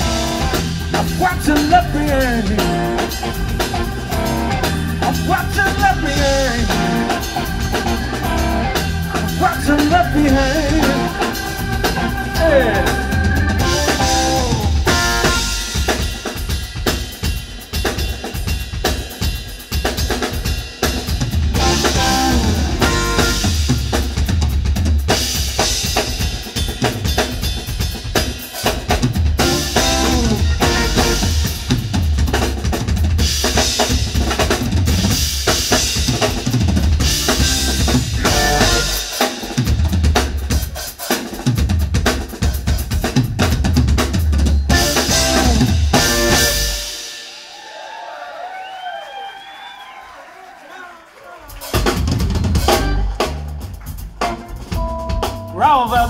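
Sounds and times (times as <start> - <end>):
funk blues band playing: 0.0 - 47.7, 51.4 - 56.0
drum kit played hard: 0.0 - 48.1, 51.4 - 56.0.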